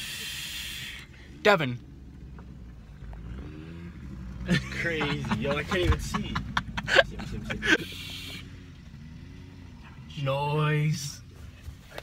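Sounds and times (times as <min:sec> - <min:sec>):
faint low hum in truck cab: 0:00.0 - 0:12.0
young man laughing: 0:04.4 - 0:08.5.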